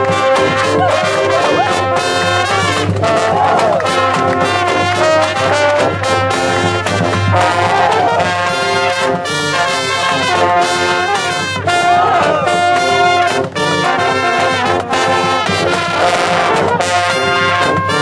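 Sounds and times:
bugles and brass horns: 0:00.0 - 0:18.0
marching drums: 0:00.0 - 0:18.0.

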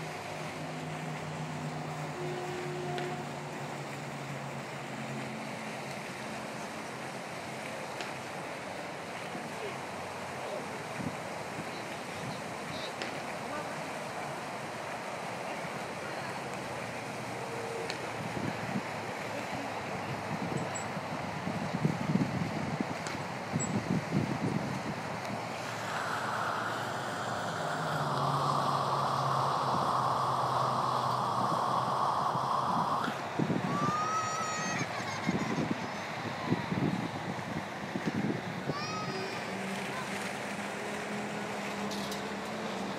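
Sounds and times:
ride machinery humming: 0:12.7 - 0:35.0
riders screaming: 0:25.7 - 0:35.2.

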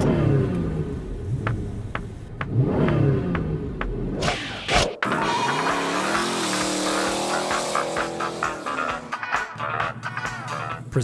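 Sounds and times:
car engine revving: 0:00.0 - 0:10.8
music: 0:01.4 - 0:11.0.

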